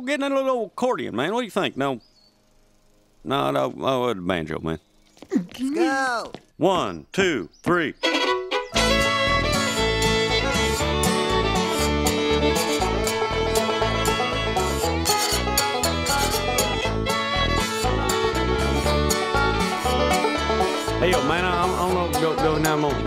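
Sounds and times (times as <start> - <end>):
fiddle: 8.0 - 23.0
keyboard bass line: 8.0 - 23.0
banjo: 8.1 - 23.0
acoustic guitar: 8.2 - 23.0.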